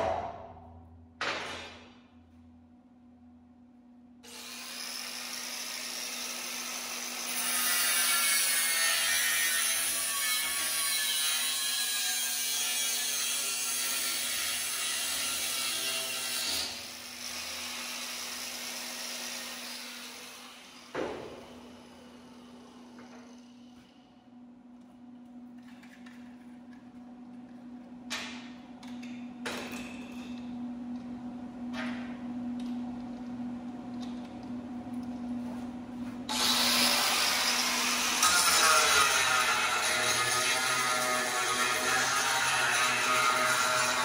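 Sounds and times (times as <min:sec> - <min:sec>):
angle grinder grinding steel: 0:36.3 - 0:44.0.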